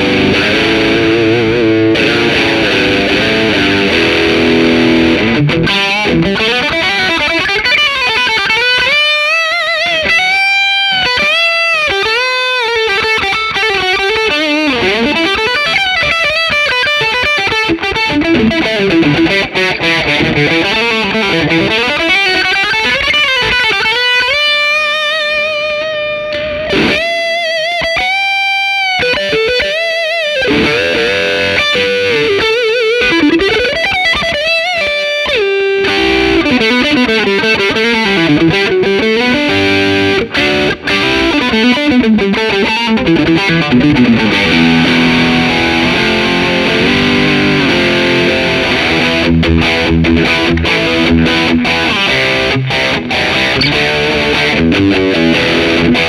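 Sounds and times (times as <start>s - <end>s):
distorted electric guitar lead: 0.0s - 56.0s.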